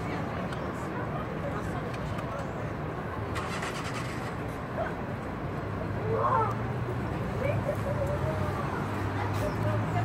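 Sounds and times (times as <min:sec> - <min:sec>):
vehicle engine humming: 0:00.0 - 0:10.0
short rattly burst: 0:03.4 - 0:04.4.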